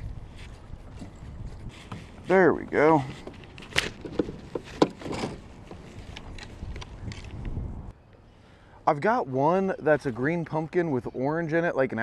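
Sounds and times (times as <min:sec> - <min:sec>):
water around kayak: 0:00.0 - 0:07.2
wind rumble on microphone: 0:00.0 - 0:07.9.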